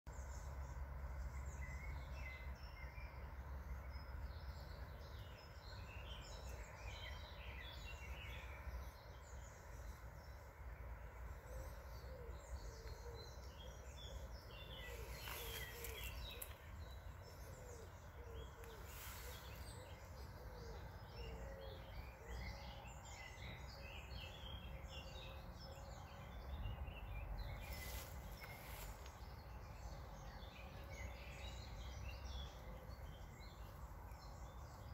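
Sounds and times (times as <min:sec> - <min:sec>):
birds chirping: 0:00.1 - 0:34.9
low outdoor rumble: 0:00.1 - 0:34.9.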